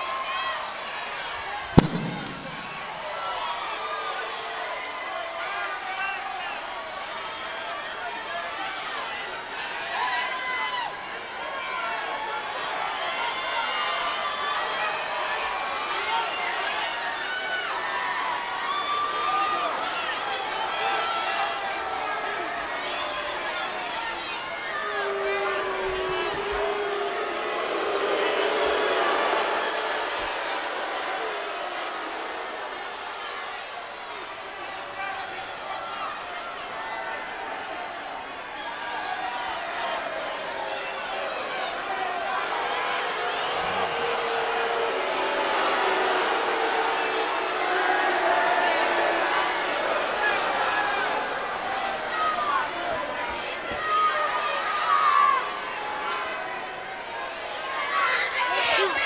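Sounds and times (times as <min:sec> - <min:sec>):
arena crowd murmur: 0:00.0 - 0:59.0
low boom: 0:01.8 - 0:03.0
sharp bang: 0:01.8 - 0:03.1.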